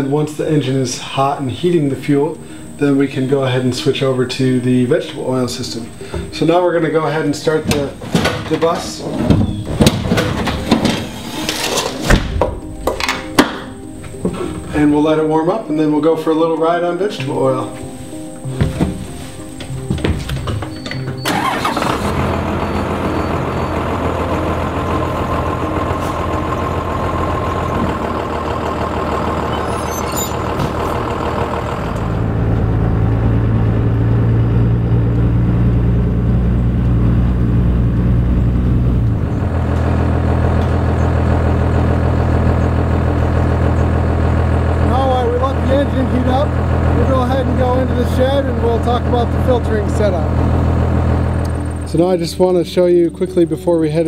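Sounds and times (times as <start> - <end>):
diesel engine starting and idling: 0.0 - 54.0.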